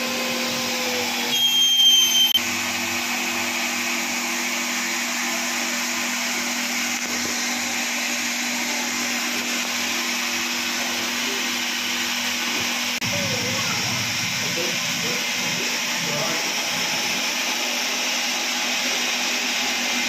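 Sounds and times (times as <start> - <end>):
electric water pump humming: 0.0 - 20.0
high-pitched whistle: 1.2 - 2.4.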